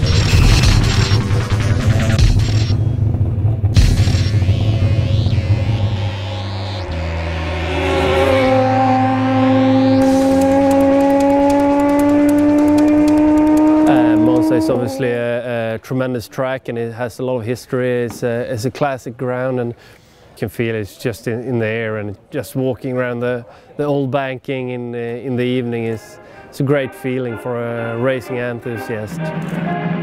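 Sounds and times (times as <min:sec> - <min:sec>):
race car engine accelerating: 0:00.0 - 0:15.3
music with heavy beat: 0:00.4 - 0:02.7, 0:03.8 - 0:06.9.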